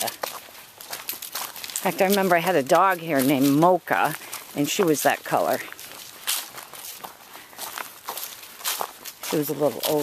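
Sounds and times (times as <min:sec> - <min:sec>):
footsteps crunching dry leaves: 0:00.0 - 0:10.0.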